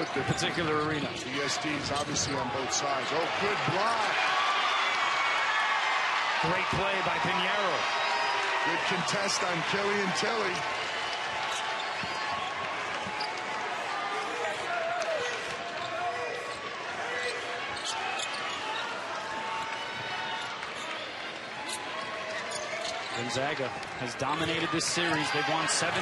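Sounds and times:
crowd murmur and voices: 0:00.0 - 0:26.0.

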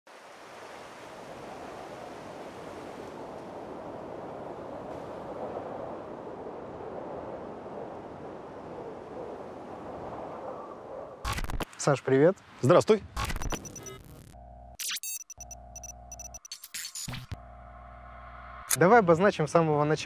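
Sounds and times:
sea surf rushing: 0:00.1 - 0:12.7.

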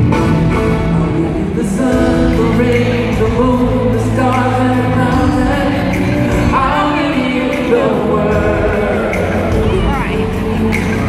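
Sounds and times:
live band with male vocal: 0:00.0 - 0:11.0.

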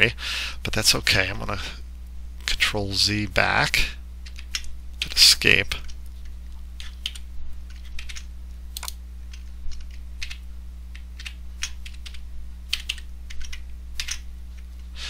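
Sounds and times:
low electrical hum: 0:00.0 - 0:15.0
keyboard keys clicking: 0:06.8 - 0:14.2.

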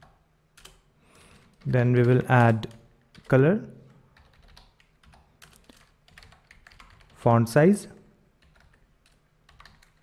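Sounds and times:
faint keyboard typing: 0:00.0 - 0:07.3, 0:08.4 - 0:10.0.

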